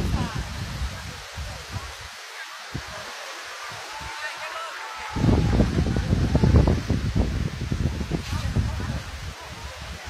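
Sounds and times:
wind buffeting microphone: 0.0 - 4.2, 5.0 - 10.0.

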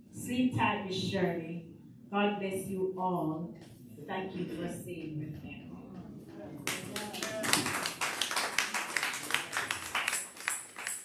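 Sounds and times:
congregation clapping: 6.6 - 11.0.

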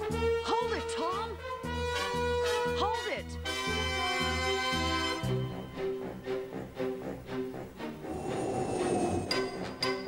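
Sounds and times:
train rushing past: 8.1 - 9.4.

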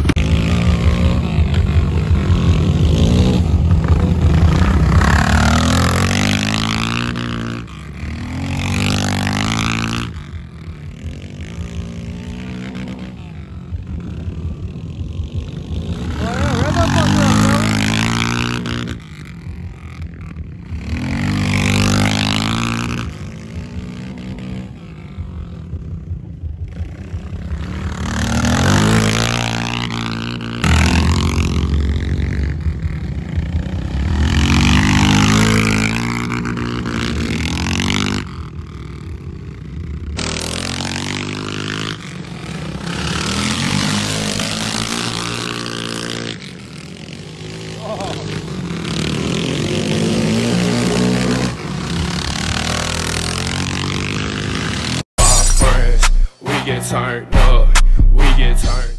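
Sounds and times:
motorcycle engines revving: 0.0 - 58.9
loud music: 55.2 - 58.9.

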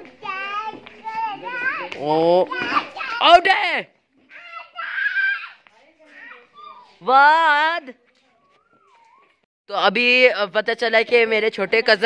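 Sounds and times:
children shouting and calling: 0.0 - 3.6, 4.2 - 7.2, 7.8 - 9.4.

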